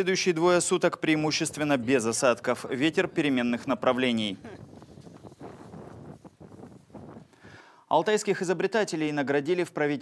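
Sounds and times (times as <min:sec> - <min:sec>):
wind blowing across microphone: 0:04.0 - 0:07.6.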